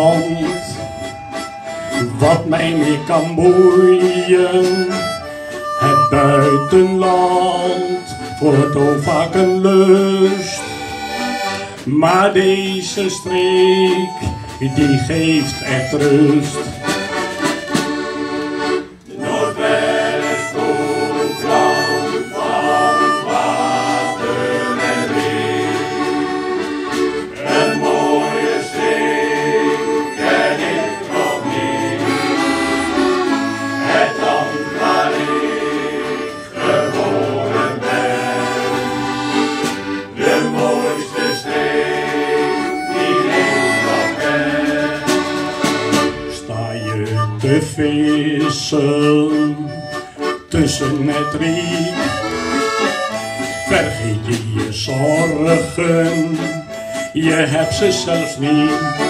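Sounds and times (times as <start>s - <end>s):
accordion: 0.0s - 59.0s
harmonica: 0.0s - 59.0s.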